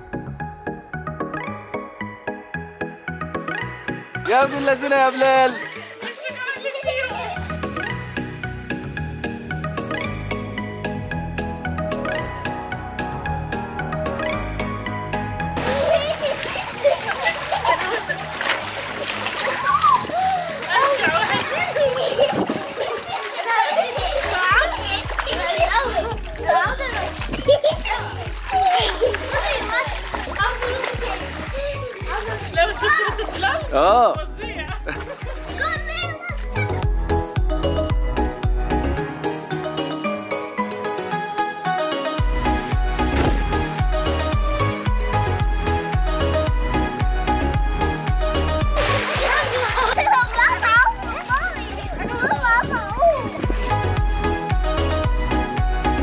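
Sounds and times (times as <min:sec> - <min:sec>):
children shouting: 0:15.6 - 0:33.4, 0:48.9 - 0:53.4
splashing in water: 0:15.6 - 0:33.7, 0:48.6 - 0:53.9
background music with low beat: 0:24.0 - 0:56.0.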